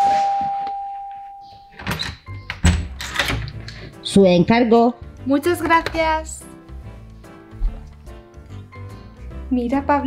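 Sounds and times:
doorbell chime: 0.0s - 1.9s.

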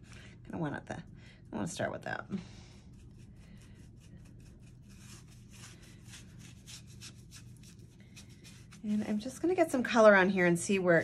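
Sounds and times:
paintbrush rubbing scratchily: 2.8s - 9.6s.

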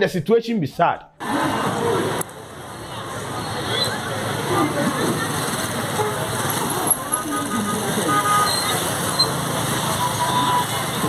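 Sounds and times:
crowd chatter: 1.2s - 11.0s
motorcycles passing close by: 1.2s - 11.0s.

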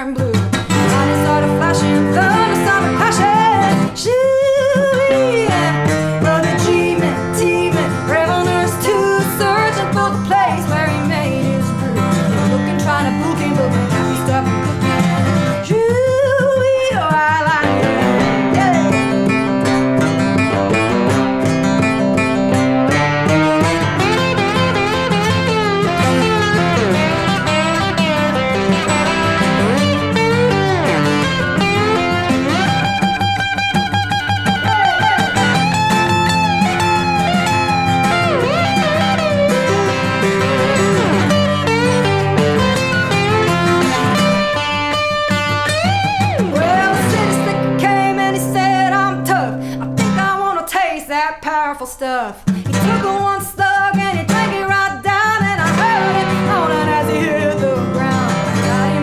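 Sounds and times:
acoustic guitar strumming: 0.0s - 51.2s, 52.4s - 59.0s
lap steel guitar slide: 17.6s - 48.3s, 55.6s - 59.0s.

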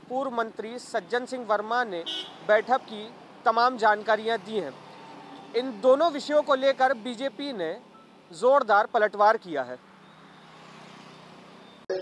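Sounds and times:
vehicle passing: 2.2s - 8.3s, 9.7s - 11.8s.

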